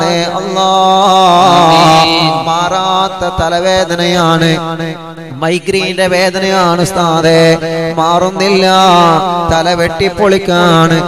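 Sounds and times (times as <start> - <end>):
men chanting: 0.0 - 3.4.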